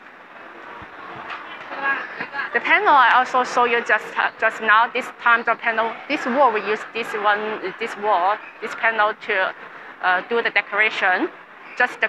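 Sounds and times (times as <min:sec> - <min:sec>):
background wash of noise: 0:00.0 - 0:12.0
faint indistinct voices: 0:00.0 - 0:12.0.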